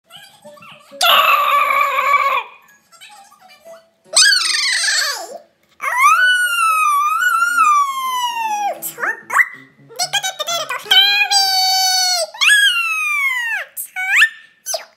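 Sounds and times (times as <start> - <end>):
wolf howl imitation: 1.0 - 2.6, 5.8 - 8.7.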